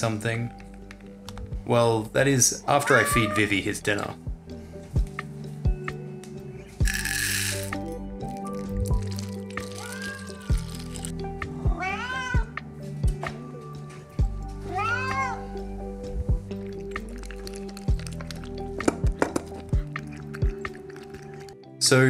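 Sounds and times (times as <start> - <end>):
cat meowing: 2.8 - 3.6, 9.7 - 10.6, 11.7 - 12.6, 14.7 - 15.5
background music with beat: 4.2 - 17.2.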